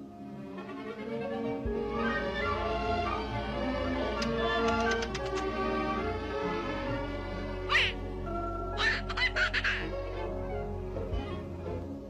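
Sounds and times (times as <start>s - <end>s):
orchestral cartoon music: 0.0s - 12.0s
cartoon duck quacking: 7.7s - 8.0s, 8.8s - 9.9s.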